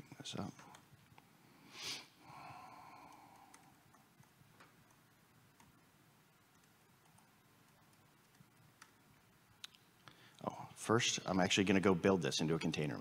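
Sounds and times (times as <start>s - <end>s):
faint keyboard clicks: 0.4s - 1.3s, 2.9s - 5.8s, 6.4s - 9.0s.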